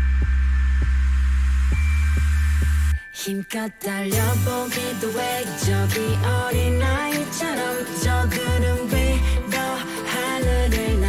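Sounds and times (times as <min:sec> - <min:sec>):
instrumental christmas pop music: 0:00.0 - 0:11.0.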